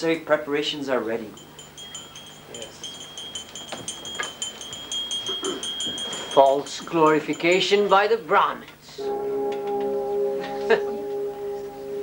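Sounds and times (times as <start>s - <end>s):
wind chimes tinkling: 1.2s - 8.6s.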